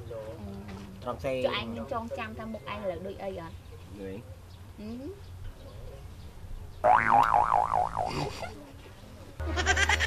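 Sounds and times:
wobbling cartoon sound effect: 6.9s - 8.2s
high pulsing laughter: 9.4s - 10.0s.

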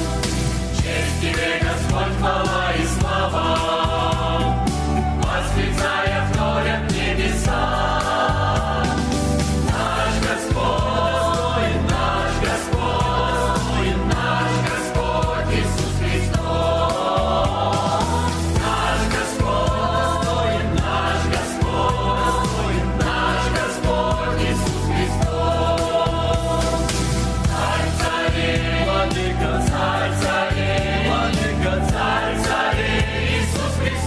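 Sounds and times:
keyboard accompaniment: 0.0s - 34.0s
mixed choir singing: 0.0s - 34.0s
pulsing bass: 0.0s - 34.0s.

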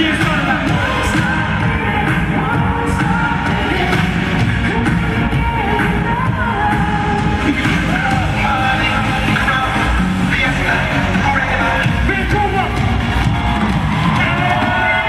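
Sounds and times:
live dance-pop music with vocals: 0.0s - 15.0s.

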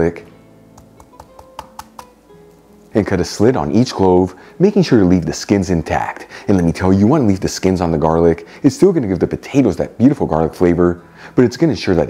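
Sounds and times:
soft background music: 0.0s - 12.0s
garlic cloves cracking: 0.8s - 2.6s.

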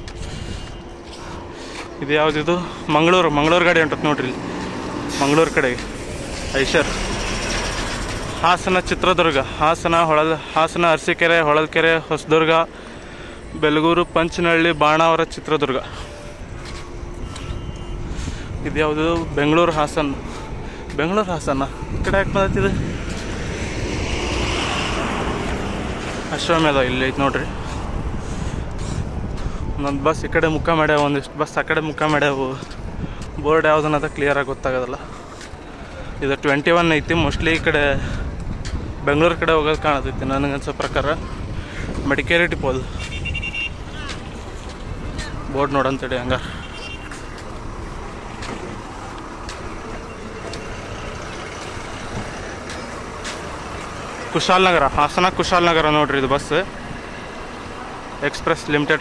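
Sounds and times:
diesel bus engines rumbling: 0.0s - 59.0s.

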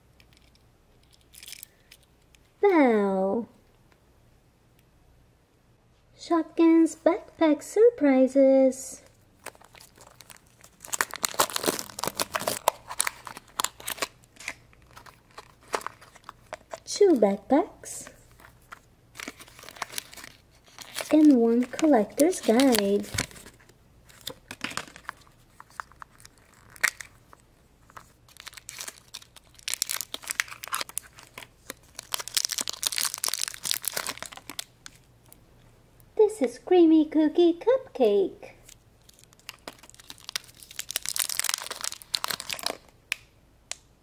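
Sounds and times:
plastic capsules clicking open: 0.2s - 2.4s
plastic wrapper crinkling and tearing: 0.3s - 2.1s, 9.0s - 17.2s, 18.0s - 35.4s, 38.6s - 43.2s
plastic packaging crackling: 9.4s - 17.2s, 18.0s - 35.4s, 38.6s - 43.2s.

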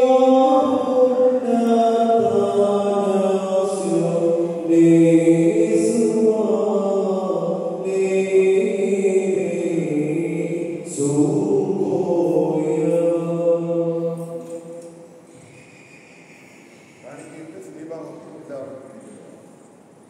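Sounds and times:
men chanting a hymn: 0.0s - 15.9s.

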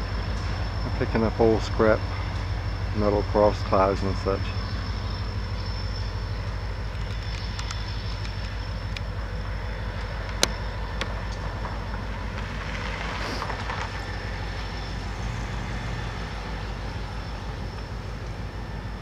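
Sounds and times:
diesel locomotive rumbling: 0.0s - 19.0s.

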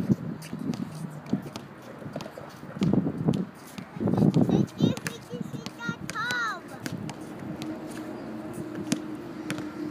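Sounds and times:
sneakers tapping on court: 0.4s - 9.8s.

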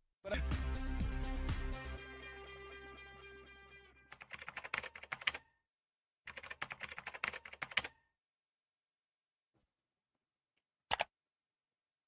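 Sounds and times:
computer keyboard typing: 4.1s - 5.5s, 6.3s - 8.0s, 10.9s - 11.1s.

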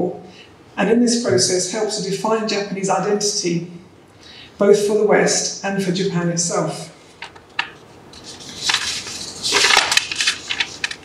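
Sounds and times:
paper rustling and crinkling: 8.2s - 11.0s.

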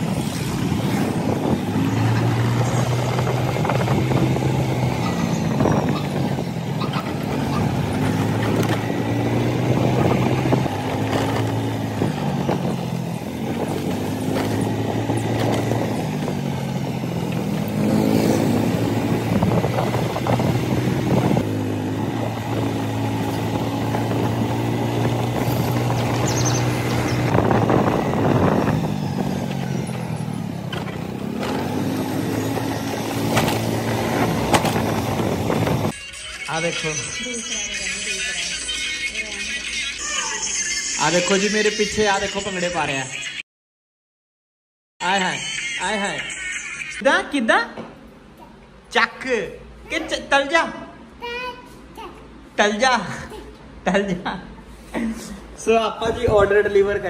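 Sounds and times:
motor scooter engine revving: 0.0s - 36.0s.

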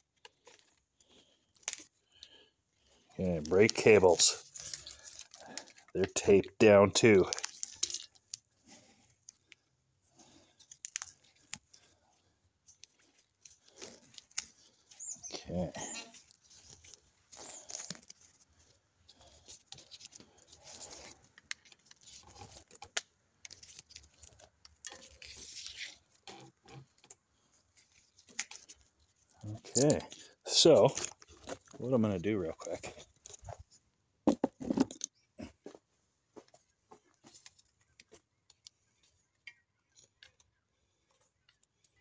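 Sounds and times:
tape tearing and crinkling: 3.5s - 5.9s, 7.2s - 8.5s, 12.9s - 15.2s, 15.8s - 18.5s, 19.1s - 27.0s
small handling clicks: 7.2s - 8.5s, 10.6s - 11.9s.

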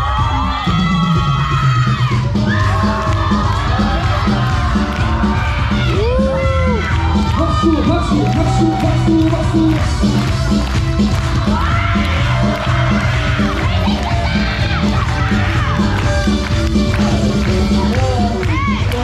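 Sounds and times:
crowd cheering and screaming: 0.0s - 19.0s
pop dance music over speakers: 0.0s - 19.0s.

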